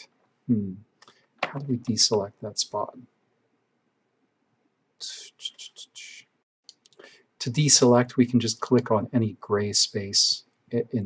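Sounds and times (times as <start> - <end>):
man whispering: 0.0 - 0.8, 1.4 - 3.0, 5.0 - 6.2, 7.4 - 11.0.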